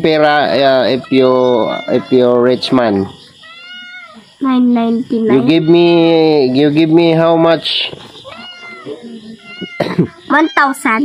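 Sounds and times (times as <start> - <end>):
faint animal cry: 0.2 - 4.4, 5.1 - 11.0.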